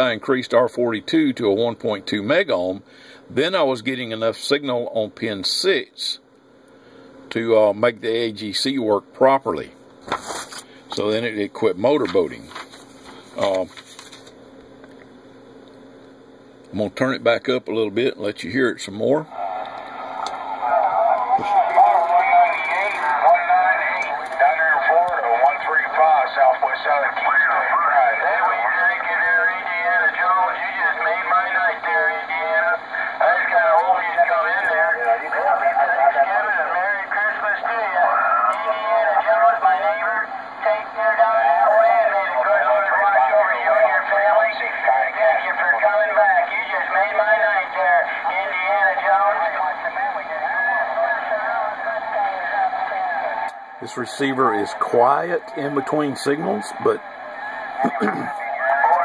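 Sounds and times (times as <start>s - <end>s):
tinny speech from radio speaker: 10.9s - 12.7s, 13.3s - 14.1s, 16.7s - 59.0s.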